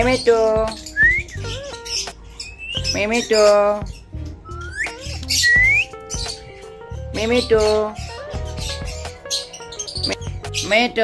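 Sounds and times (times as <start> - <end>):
background music: 0.0 - 11.0
parrots chirping and whistling: 0.0 - 11.0.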